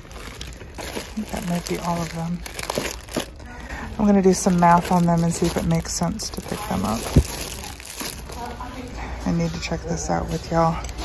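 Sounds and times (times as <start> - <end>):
plastic bags crinkling: 0.0 - 9.0.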